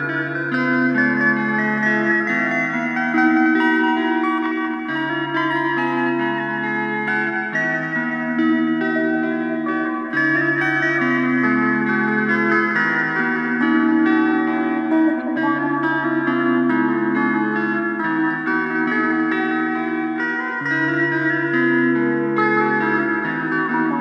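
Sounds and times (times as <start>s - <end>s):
rock-blues guitar with echo: 0.0s - 24.0s.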